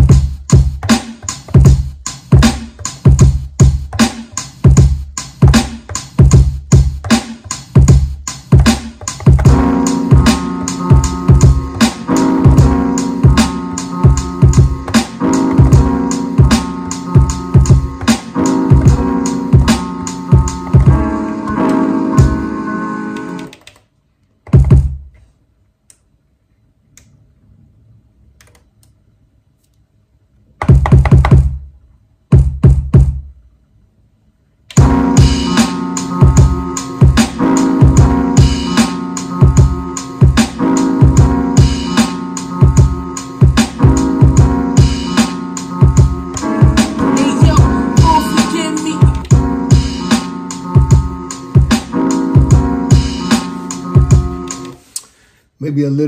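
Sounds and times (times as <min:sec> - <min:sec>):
drum beat with pitched notes: 0:00.0 - 0:22.5, 0:24.5 - 0:25.0, 0:30.6 - 0:31.6, 0:32.3 - 0:33.2, 0:34.8 - 0:54.7.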